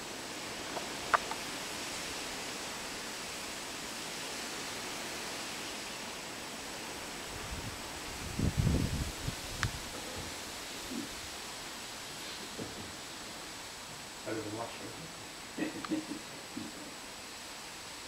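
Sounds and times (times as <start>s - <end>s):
outdoor rushing hiss: 0.0s - 18.0s
wind buffeting microphone: 7.2s - 11.4s.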